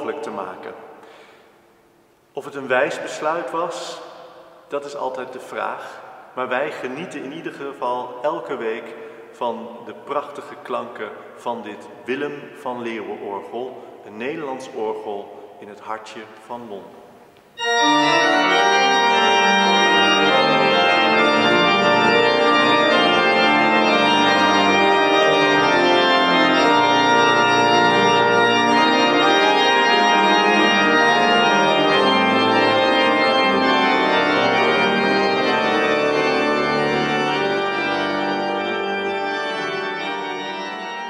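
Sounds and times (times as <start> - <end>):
pipe organ playing: 17.6 - 41.0.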